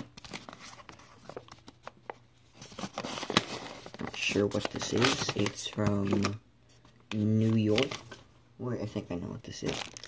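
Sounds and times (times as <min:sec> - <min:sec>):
paper and plastic rustling: 0:00.0 - 0:08.3, 0:09.5 - 0:10.0
envelope tearing: 0:09.6 - 0:10.0.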